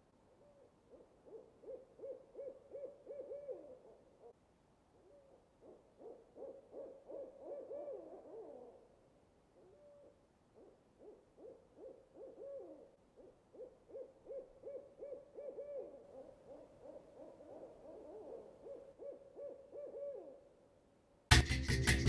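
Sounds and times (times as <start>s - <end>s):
owl hooting: 0.3s - 4.4s, 5.0s - 8.9s, 9.6s - 20.5s.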